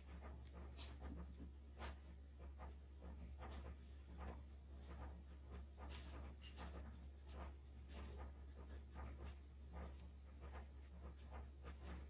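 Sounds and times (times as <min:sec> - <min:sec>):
low electrical hum: 0:00.0 - 0:12.0
scratchy strokes on paper: 0:00.0 - 0:12.0.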